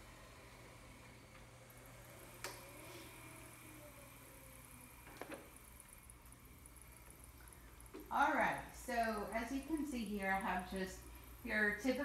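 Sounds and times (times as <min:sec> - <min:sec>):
wheelchair motor whine: 0:00.0 - 0:12.0.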